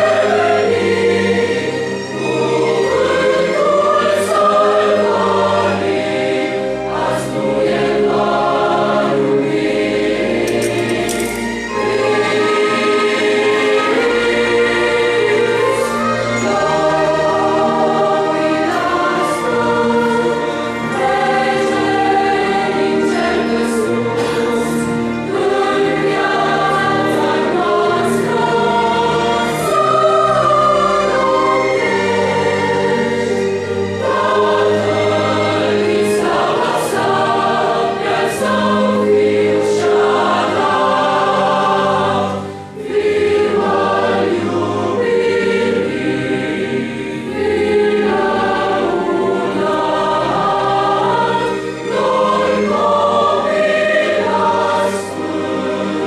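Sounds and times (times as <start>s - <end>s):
mixed choir singing: 0.0s - 56.0s.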